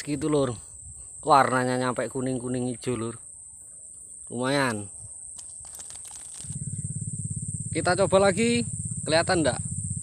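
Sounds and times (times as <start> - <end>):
insects trilling: 0.0 - 10.0
light rustles and clicks: 4.6 - 6.6
low rapidly pulsing drone: 6.4 - 10.0.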